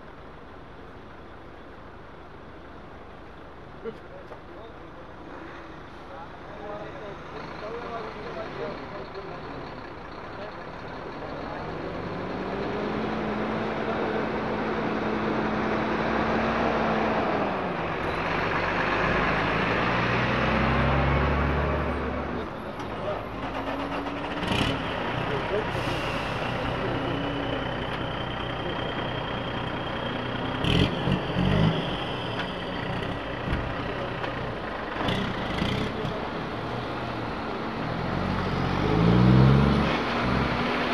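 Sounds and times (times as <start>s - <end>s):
diesel truck engine: 0.0s - 40.9s.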